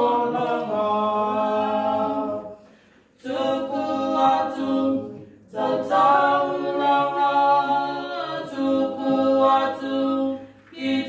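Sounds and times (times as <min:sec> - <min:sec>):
group singing unaccompanied: 0:00.0 - 0:11.0.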